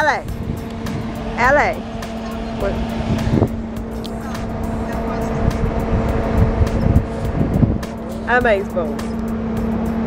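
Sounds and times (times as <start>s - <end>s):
minibus engine idling: 0.0s - 10.0s
wind buffeting microphone: 0.0s - 10.0s
faint voices: 3.9s - 6.2s.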